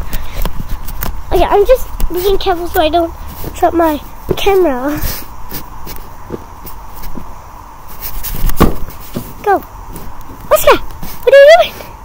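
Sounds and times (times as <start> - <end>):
rustling thump: 3.3 - 11.3.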